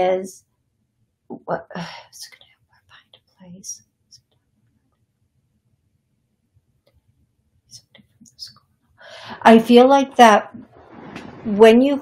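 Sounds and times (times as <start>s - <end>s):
woman whispering: 3.2s - 4.3s.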